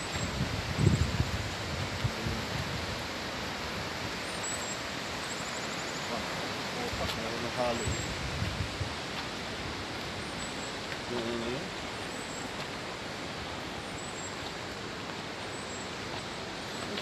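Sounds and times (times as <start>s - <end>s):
river rushing: 0.0s - 17.0s.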